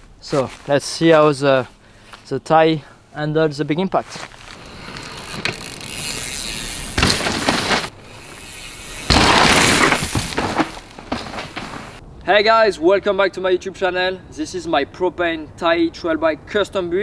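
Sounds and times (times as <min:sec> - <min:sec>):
bike tyres rolling over rock: 0:04.2 - 0:12.0
bike landing burst: 0:04.4 - 0:12.0
bike freewheel ratcheting: 0:04.6 - 0:10.6.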